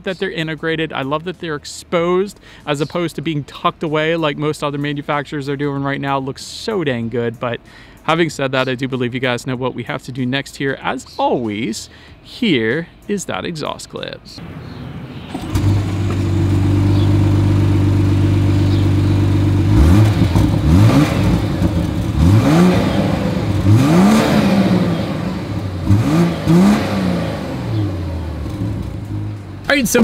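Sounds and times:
car engine idling and revving: 14.4s - 30.0s.

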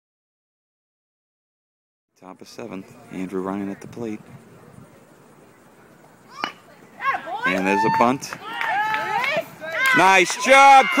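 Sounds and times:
faint outdoor background: 2.1s - 11.0s
bat knocking ball: 6.4s - 6.6s.

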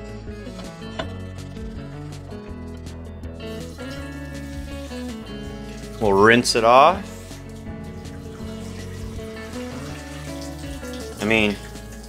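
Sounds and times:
background music of held notes: 0.0s - 12.0s
tap water running into sink: 3.5s - 12.0s
water splashing on skillet: 3.5s - 12.0s.

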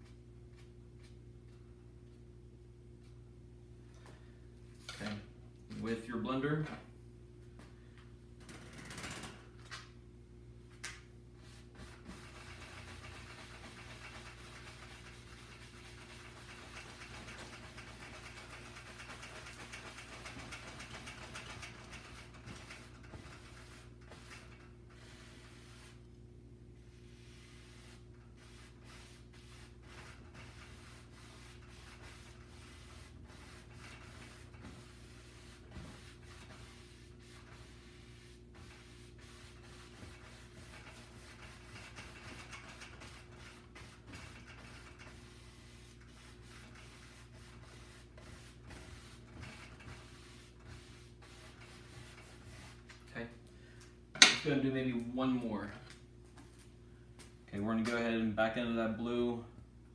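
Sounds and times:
brush scrubbing on canvas: 11.4s - 26.1s, 26.8s - 53.2s.

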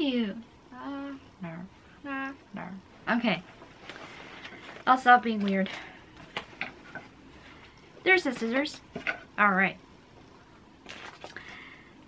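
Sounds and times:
paper rustle: 10.9s - 11.6s.

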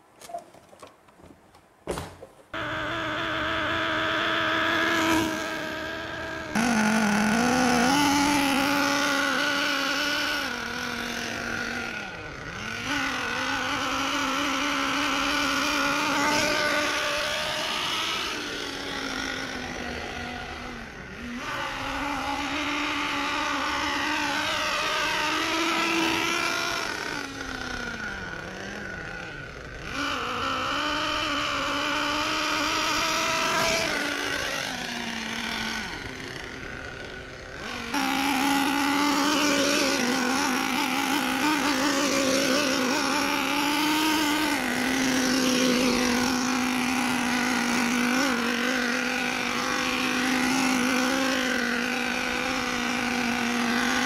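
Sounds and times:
nitro engine revving: 2.5s - 54.0s.

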